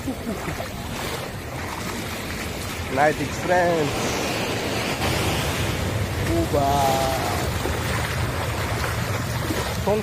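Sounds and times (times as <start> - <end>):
surf breaking on beach: 0.4 - 10.0.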